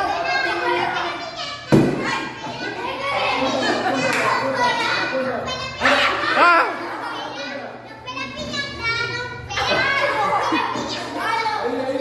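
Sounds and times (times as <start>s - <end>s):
children shouting: 0.0s - 12.0s
stick striking pinata: 1.7s - 2.2s.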